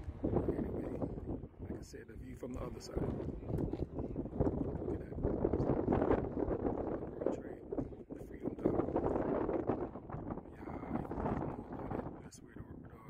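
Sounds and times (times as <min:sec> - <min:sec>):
wind buffeting the microphone: 0:00.0 - 0:13.0.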